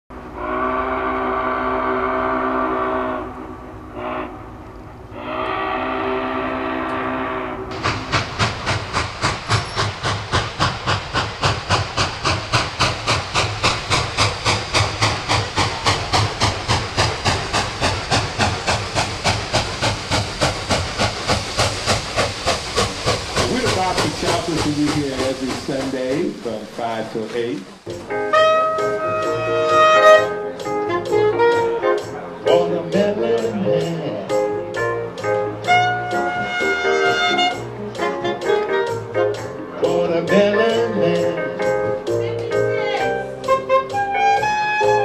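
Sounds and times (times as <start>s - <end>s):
steam locomotive whistle: 0.2s - 8.7s, 27.9s - 45.0s
steam engine exhaust chuffing: 5.3s - 42.1s.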